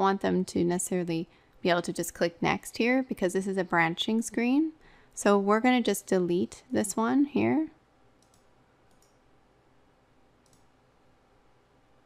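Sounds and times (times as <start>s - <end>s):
faint computer mouse clicks: 8.2s - 9.2s, 10.4s - 10.7s.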